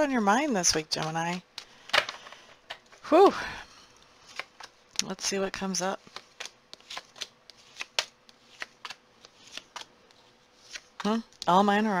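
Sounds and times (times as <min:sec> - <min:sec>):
cards snapping and tapping: 0:01.0 - 0:02.3, 0:06.1 - 0:11.5.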